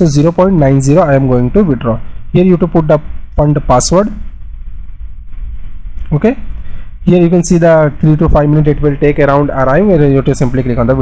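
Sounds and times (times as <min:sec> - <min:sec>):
faint hiss: 0:00.0 - 0:11.0
low background hum: 0:00.0 - 0:11.0.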